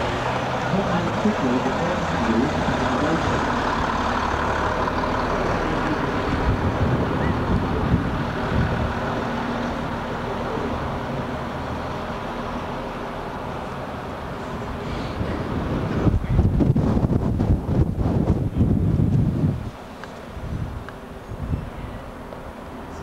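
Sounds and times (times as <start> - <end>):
low engine hum: 0.0 - 23.0
street noise: 0.0 - 23.0
wind buffeting microphone: 5.6 - 10.0, 14.3 - 22.2.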